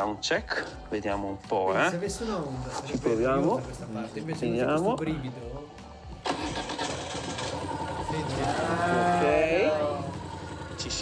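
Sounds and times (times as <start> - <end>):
motorcycle engine starting and running: 6.0 - 11.0.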